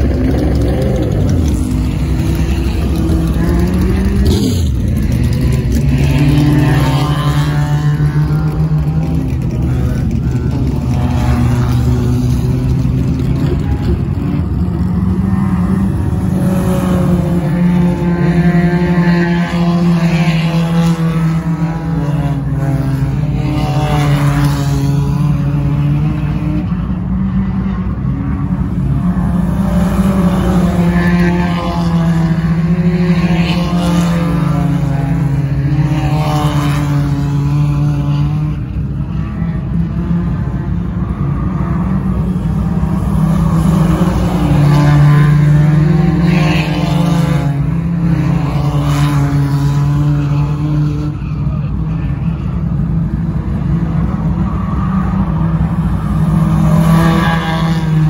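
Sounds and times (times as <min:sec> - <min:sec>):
race car engines passing: 0:00.0 - 0:58.0.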